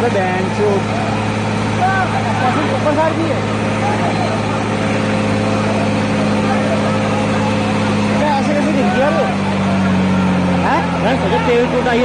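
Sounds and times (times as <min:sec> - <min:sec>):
people's voices: 0:00.0 - 0:12.0
vehicle engine idling: 0:00.0 - 0:12.0.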